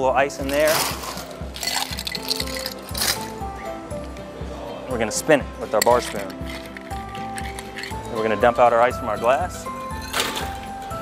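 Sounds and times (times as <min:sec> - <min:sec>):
background music: 0:00.0 - 0:11.0
ice clinking against glass: 0:00.5 - 0:03.4, 0:05.8 - 0:08.2.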